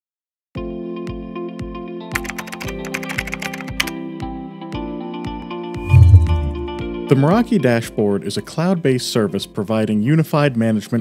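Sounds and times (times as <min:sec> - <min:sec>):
computer keyboard typing: 0:02.1 - 0:04.0
background music with low thumps: 0:05.8 - 0:07.0.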